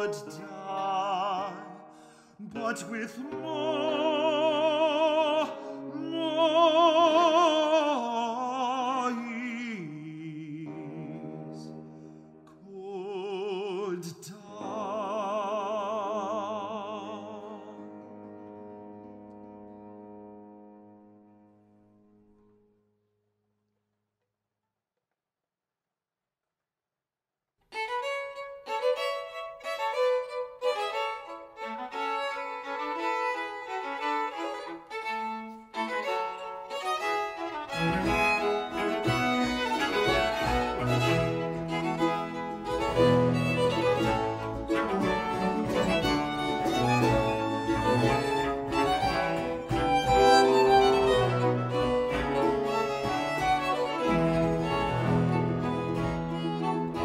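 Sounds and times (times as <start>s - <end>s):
violins playing melody: 0.0s - 8.1s, 27.7s - 57.0s
lower strings and bass: 37.7s - 57.0s.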